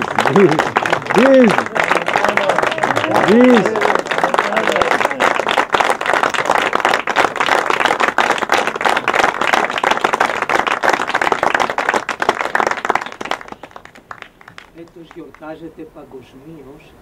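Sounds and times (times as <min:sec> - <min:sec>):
audience applause: 0:00.0 - 0:15.6.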